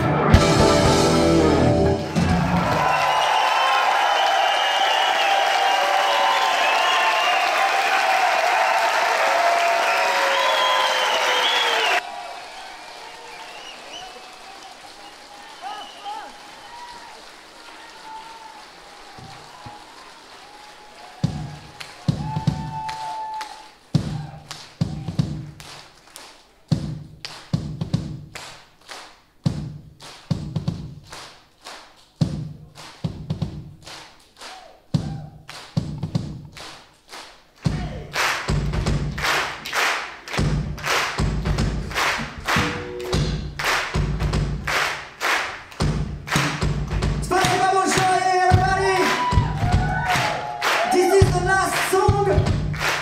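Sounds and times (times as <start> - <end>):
live band playing: 0.0 - 2.9, 41.2 - 44.7
live band accented hits: 0.0 - 3.3, 37.6 - 53.0.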